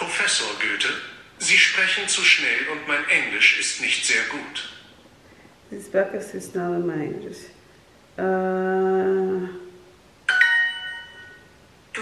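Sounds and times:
two-note phone chime: 10.3 - 11.5.

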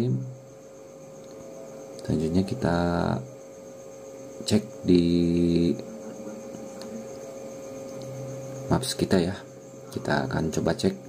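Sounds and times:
faint electrical hum: 0.0 - 11.0
low buzz: 0.0 - 11.0.

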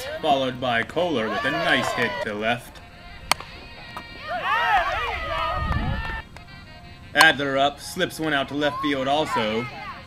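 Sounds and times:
voices shouting: 0.0 - 10.0
bat hitting ball: 3.2 - 4.5.

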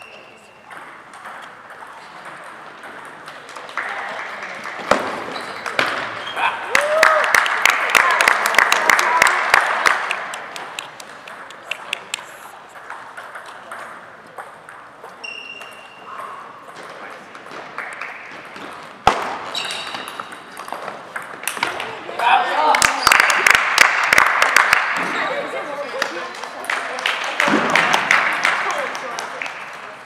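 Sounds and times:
voices in a hall: 0.0 - 30.0
table tennis balls clicking: 0.6 - 6.2, 8.5 - 22.0.

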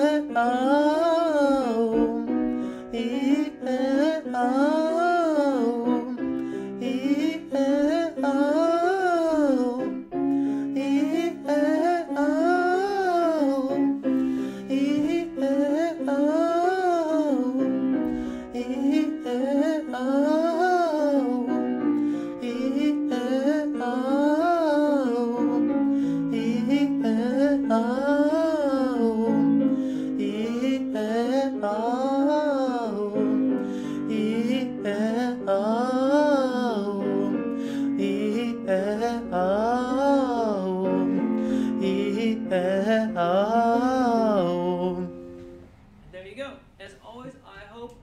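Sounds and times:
piano accompaniment: 0.0 - 46.1
man doing vocal warm-ups: 46.1 - 48.0.

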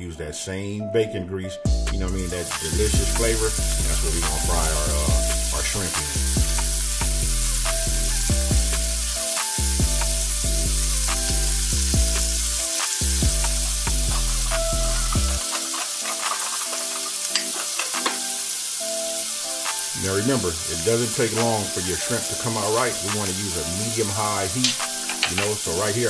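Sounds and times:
background music with bass line: 1.7 - 15.6
shrimp sizzling in a skillet: 2.3 - 26.0.

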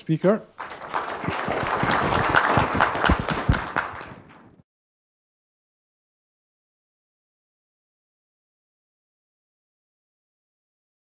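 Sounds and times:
audience applauding: 0.6 - 4.6.

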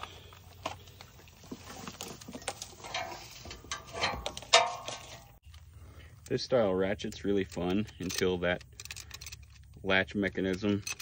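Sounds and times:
metal tool clicks and scraping: 10.4 - 11.0.

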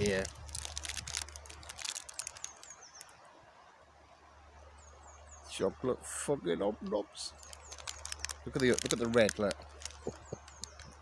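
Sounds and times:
plastic wrapper crinkling: 0.0 - 3.1, 7.3 - 11.0
bird chirping: 0.0 - 3.7, 4.5 - 11.0.

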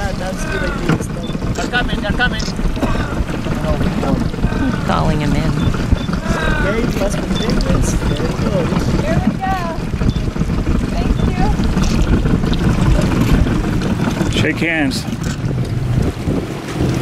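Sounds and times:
people talking indistinctly: 0.0 - 15.5
boat engine rumble: 0.0 - 17.0
wind on microphone: 0.0 - 17.0.

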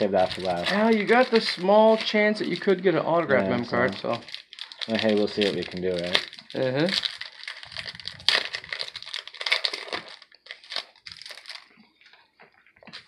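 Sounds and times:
foil wrapper tearing and crinkling: 0.0 - 2.9, 3.8 - 12.2.

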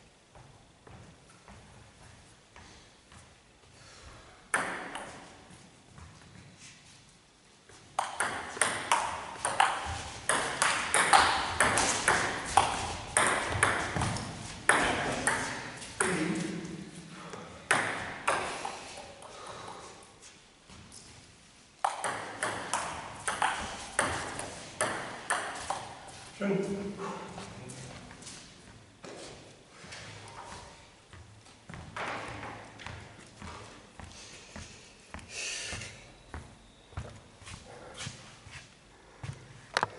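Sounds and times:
footsteps on hall floor: 0.0 - 4.2, 25.6 - 39.9.

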